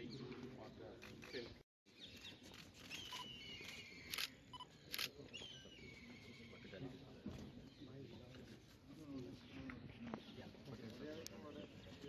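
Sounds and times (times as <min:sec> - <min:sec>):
short bird chirps: 0:02.0 - 0:05.8.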